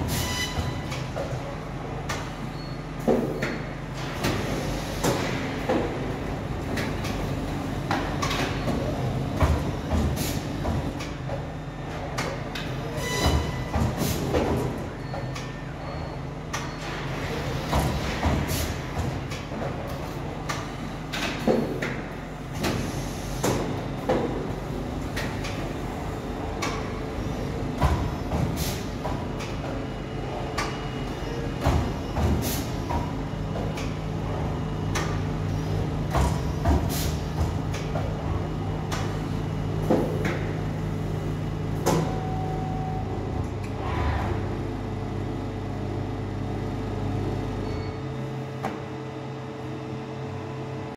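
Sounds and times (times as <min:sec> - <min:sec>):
machine clunks and knocks: 0:03.0 - 0:15.6, 0:16.5 - 0:25.8, 0:27.7 - 0:30.8, 0:31.5 - 0:35.3, 0:36.0 - 0:39.2, 0:41.8 - 0:42.4.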